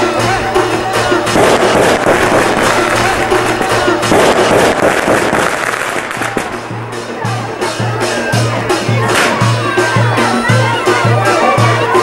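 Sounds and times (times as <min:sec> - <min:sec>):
reed pipe playing: 0:00.0 - 0:08.8
crowd voices: 0:00.0 - 0:12.0
metal drum sharp strikes: 0:01.3 - 0:07.0.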